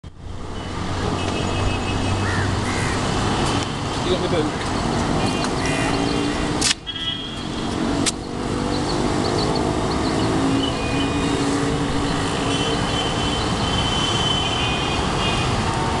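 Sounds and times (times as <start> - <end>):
traffic engines and tyres: 0.0 - 16.0
car horns: 0.6 - 2.3, 5.0 - 7.8, 10.0 - 15.7
sharp clicks: 8.0 - 8.3.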